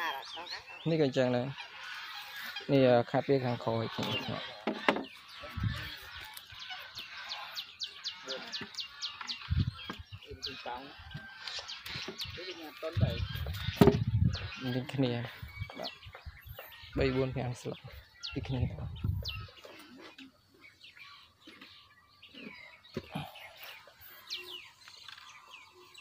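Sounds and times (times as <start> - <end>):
domestic fowl calling: 0.0 - 26.0.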